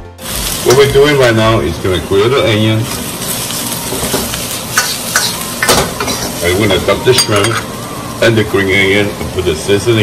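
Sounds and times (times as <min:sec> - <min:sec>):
vegetables sizzling in a wok: 0:00.0 - 0:10.0.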